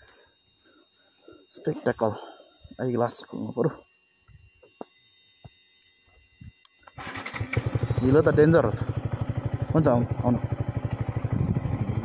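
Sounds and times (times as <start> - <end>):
motorcycle engine running: 7.0 - 12.0.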